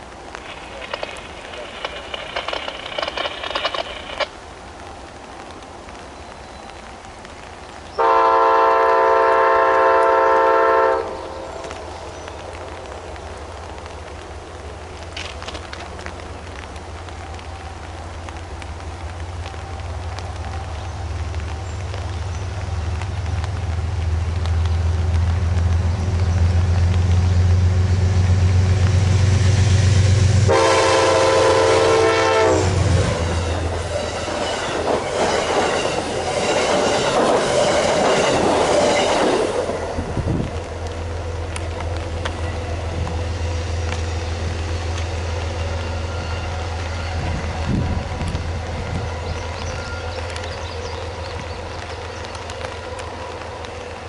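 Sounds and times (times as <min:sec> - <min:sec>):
train wheels clicking on rails: 0:00.0 - 0:04.8, 0:11.5 - 0:54.0
locomotive engine drone: 0:00.0 - 0:06.2, 0:09.4 - 0:54.0
train horn blast: 0:08.0 - 0:11.4, 0:30.0 - 0:36.0.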